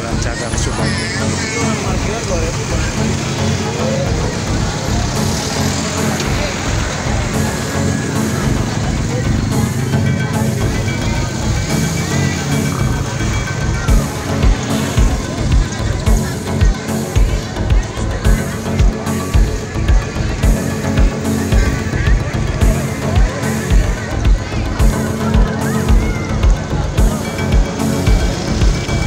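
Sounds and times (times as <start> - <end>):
background music with steady beat: 0.0 - 29.0
crowd voices: 0.0 - 29.0
motorcycles passing: 0.0 - 29.0.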